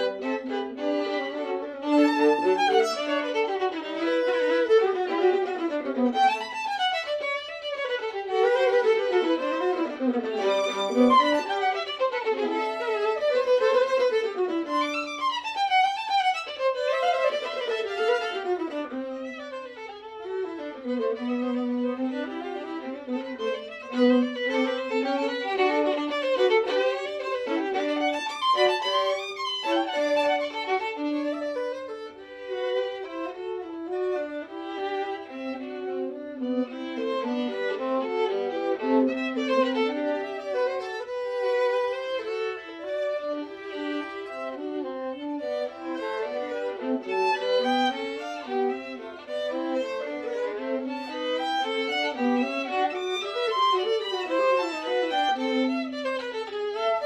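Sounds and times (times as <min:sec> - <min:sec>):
violin and viola duo: 0:00.0 - 0:57.0.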